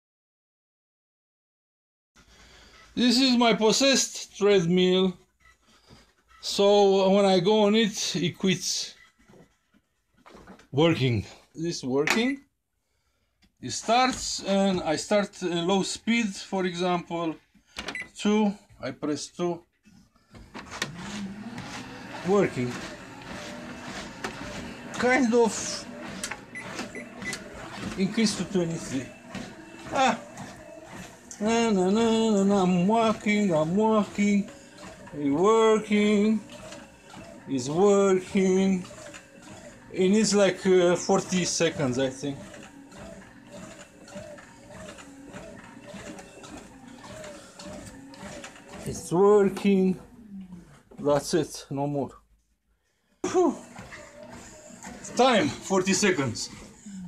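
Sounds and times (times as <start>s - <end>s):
treadmill motor and belt humming: 2.2s - 12.3s, 13.7s - 52.0s, 53.2s - 57.0s
treadmill click: 10.2s - 10.9s, 13.7s - 19.2s, 20.2s - 50.2s, 53.3s - 56.9s.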